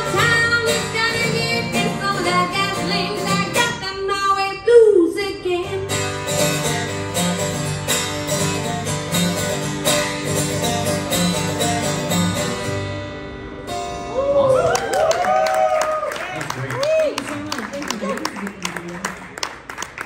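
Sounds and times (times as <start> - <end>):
acoustic guitars strumming: 0.0 - 14.2.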